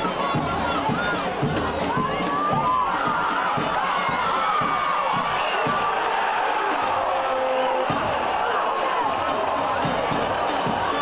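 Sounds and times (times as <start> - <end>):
stadium crowd shouting and cheering: 0.0 - 11.0.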